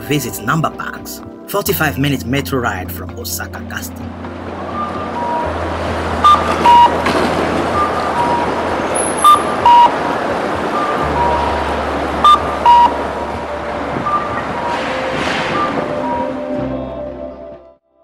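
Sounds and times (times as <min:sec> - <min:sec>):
street traffic noise: 0:02.2 - 0:17.8
crossing signal two-note chirp: 0:10.8 - 0:13.0.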